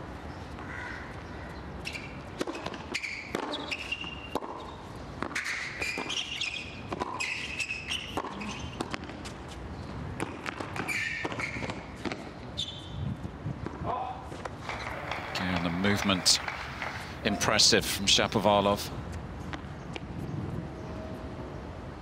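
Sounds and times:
shoe squeaks: 1.8 - 4.8, 5.4 - 8.8, 10.8 - 13.0, 14.6 - 17.6
tennis ball bouncing: 2.4 - 9.4, 14.6 - 17.2
tennis racket strikes: 14.7 - 17.2.

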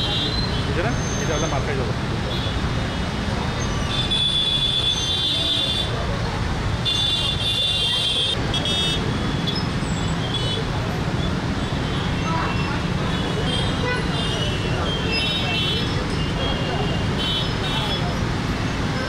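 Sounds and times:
traffic rumble: 0.0 - 19.0.

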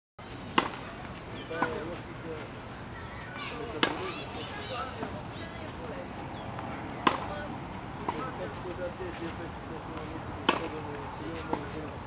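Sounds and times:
racket hitting tennis ball: 0.5 - 1.0, 3.8 - 4.1, 7.0 - 7.4, 10.4 - 11.7.

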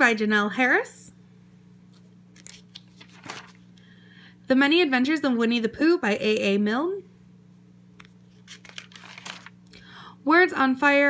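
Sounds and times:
faint steady hum: 0.0 - 11.0
paper page turning: 1.9 - 3.7, 8.0 - 9.6.

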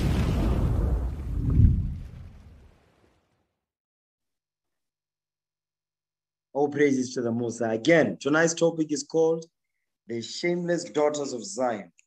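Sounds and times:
deep low boom: 0.0 - 2.8.

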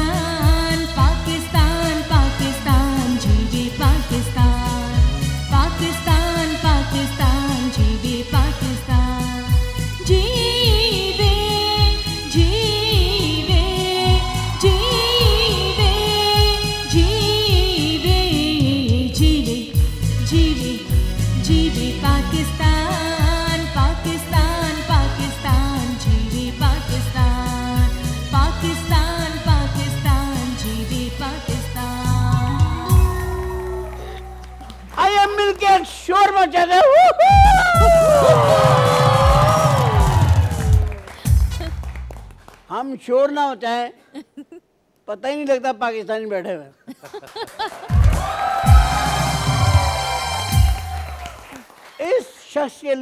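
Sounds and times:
woman singing into microphone: 0.0 - 34.5
steady drum beat: 9.5 - 29.0, 37.3 - 41.8, 47.9 - 51.2
band accompaniment: 47.9 - 51.2.

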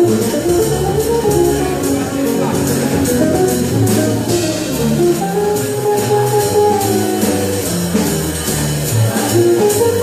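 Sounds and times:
double bass: 0.0 - 10.0
electric guitar: 0.0 - 10.0.

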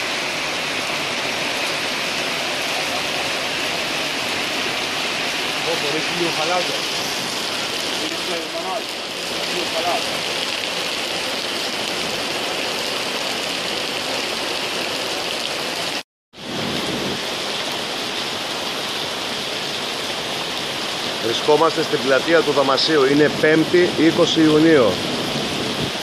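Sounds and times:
heavy rain on paving stones: 0.0 - 26.0.

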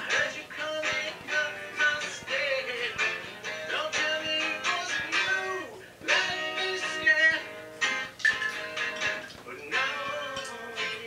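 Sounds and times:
man singing: 0.0 - 8.0, 9.2 - 11.0
strummed guitar: 0.0 - 11.0.

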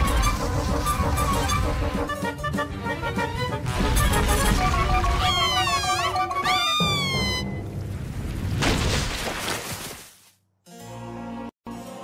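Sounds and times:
cartoon background music: 0.0 - 7.8.

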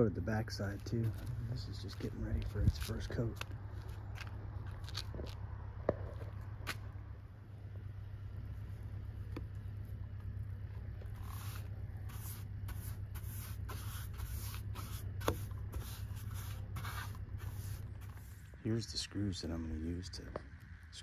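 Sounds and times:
steady low rumble: 0.0 - 21.0
paintbrush strokes swishing: 11.0 - 18.5.

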